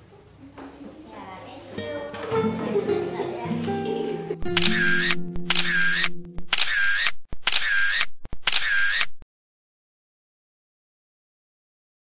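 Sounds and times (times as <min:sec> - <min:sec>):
short clicky bursts: 0:04.4 - 0:09.2.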